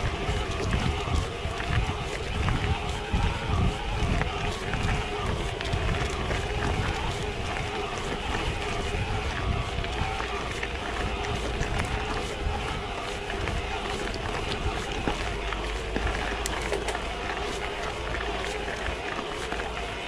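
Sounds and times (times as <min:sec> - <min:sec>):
bike tyre and drivetrain noise: 0:00.0 - 0:20.0.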